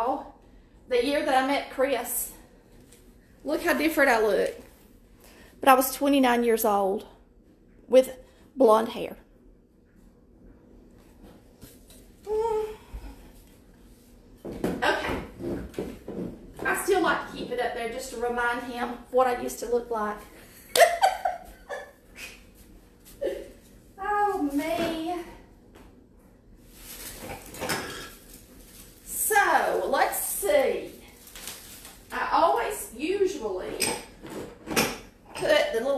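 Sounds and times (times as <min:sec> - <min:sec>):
objects clattering: 0:26.8 - 0:29.1.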